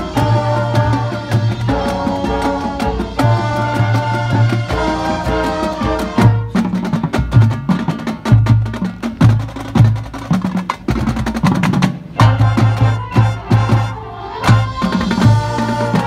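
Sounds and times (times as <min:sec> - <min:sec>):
held band notes: 0:00.0 - 0:10.2, 0:12.1 - 0:16.0
marching band drums and mallets: 0:00.0 - 0:16.0.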